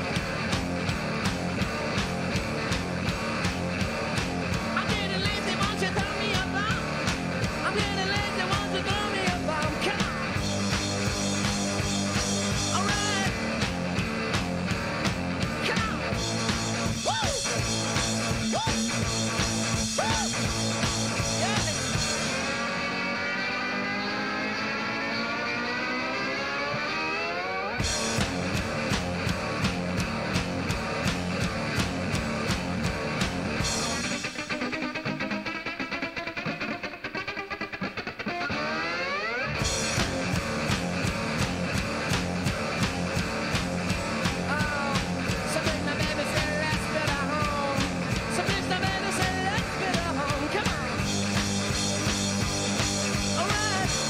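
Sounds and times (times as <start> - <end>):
drums: 0.0 - 54.0
guitar rock music: 0.0 - 54.0
rising sweep: 22.3 - 27.8.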